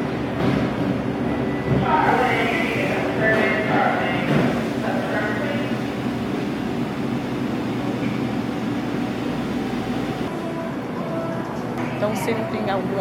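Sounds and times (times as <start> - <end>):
supermarket hum and murmur: 0.0 - 13.0.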